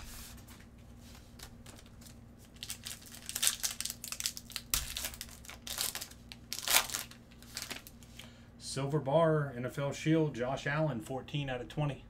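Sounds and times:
plastic wrapper crinkling: 1.4s - 8.1s.

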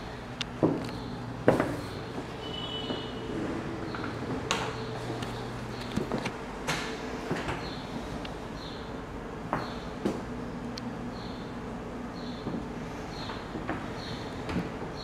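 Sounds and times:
steady low hum: 0.0s - 15.0s
doors knocking and clicking: 0.6s - 3.1s.

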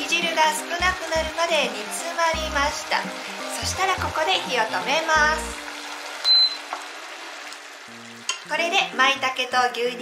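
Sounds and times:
sauce sizzling faintly: 0.0s - 10.0s
cooker beep: 2.4s - 7.0s.

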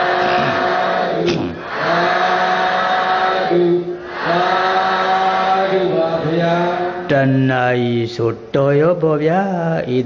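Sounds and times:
person chanting in held notes: 0.0s - 10.0s.

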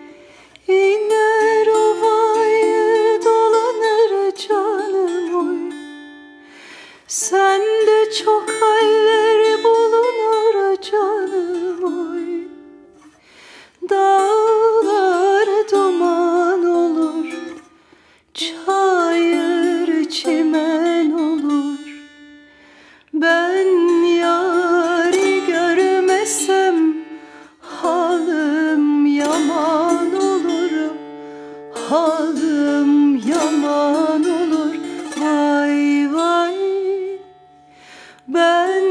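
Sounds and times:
plucked lute notes: 0.0s - 38.9s
woman singing folk song: 0.0s - 38.9s.

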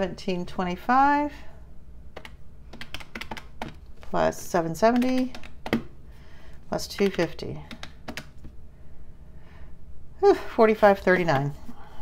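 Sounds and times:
calculator keys clicking: 2.2s - 3.8s, 4.9s - 5.8s, 6.9s - 8.5s.

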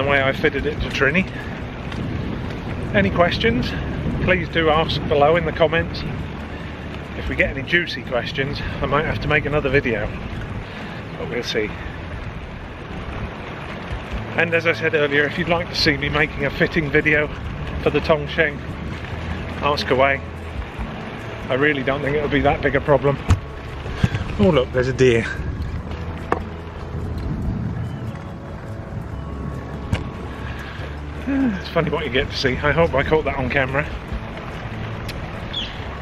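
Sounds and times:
tyres rolling along a path: 0.0s - 36.0s
wind on microphone: 0.0s - 36.0s.

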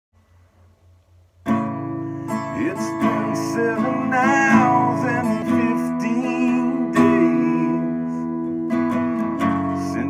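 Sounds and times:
acoustic guitar chord ringing: 0.3s - 10.0s.

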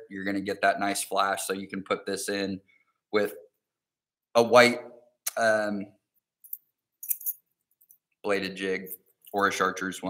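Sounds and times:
faint metallic clinks and jingles: 6.4s - 8.0s.

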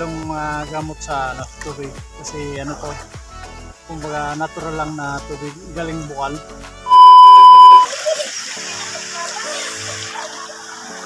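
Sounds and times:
background music: 0.0s - 7.6s
test-tone beep: 6.9s - 7.9s.

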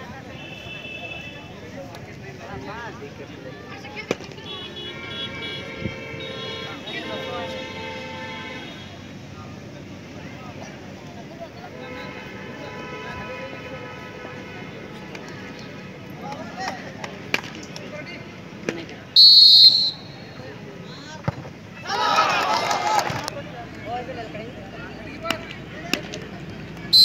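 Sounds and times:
outdoor background noise: 0.0s - 27.0s
people calling and shouting: 0.0s - 27.0s.

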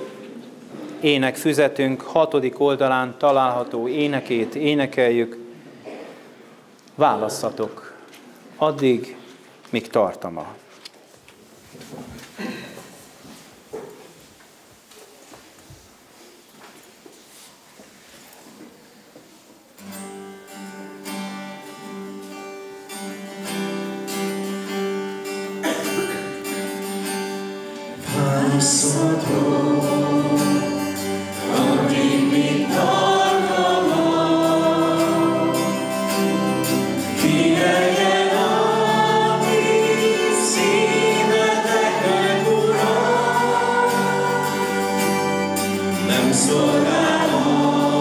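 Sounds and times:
acoustic guitar: 18.7s - 48.0s
congregation singing a hymn: 27.7s - 48.0s.

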